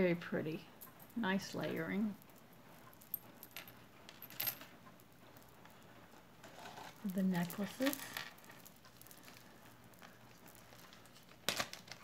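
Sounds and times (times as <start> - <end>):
glass beads clicking: 0.8 - 5.9, 6.5 - 12.0.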